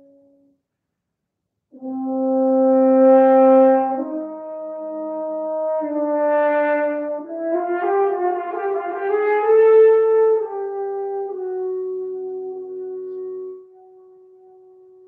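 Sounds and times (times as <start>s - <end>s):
french horn playing: 0.0s - 0.6s, 1.7s - 15.0s.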